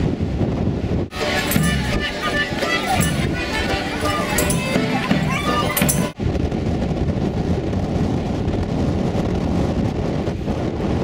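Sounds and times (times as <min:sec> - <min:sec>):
folk band with accordions and whistles: 0:01.2 - 0:06.2.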